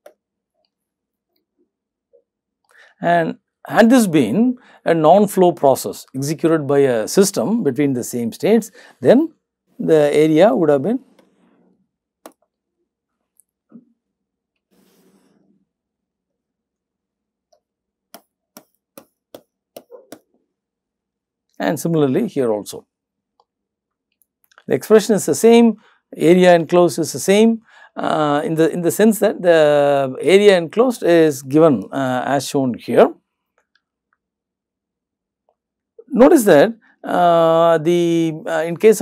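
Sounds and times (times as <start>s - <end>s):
person speaking: 3.0s - 11.2s, 21.6s - 22.8s, 24.5s - 33.2s
stylus tapping on tablet screen: 17.5s - 20.4s.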